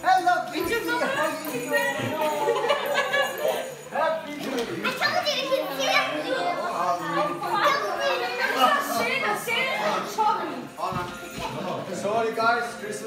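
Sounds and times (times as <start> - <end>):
children talking excitedly: 0.0 - 10.9
adult chatter: 0.0 - 13.0.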